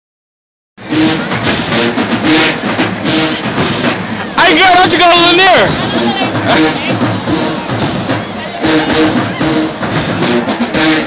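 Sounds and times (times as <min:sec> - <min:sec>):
marching band music: 0:00.8 - 0:11.0.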